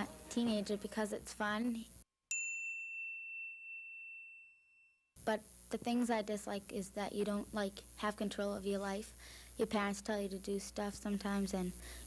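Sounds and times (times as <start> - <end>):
high bell-like ding: 2.3 - 5.1.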